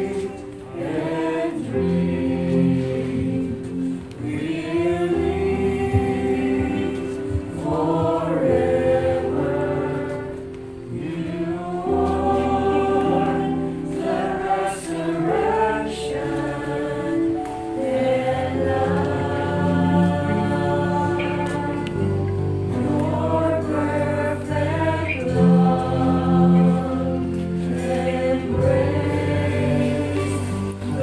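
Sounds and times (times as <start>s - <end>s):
group singing a hymn: 0.0s - 31.0s
instrumental accompaniment: 0.0s - 31.0s.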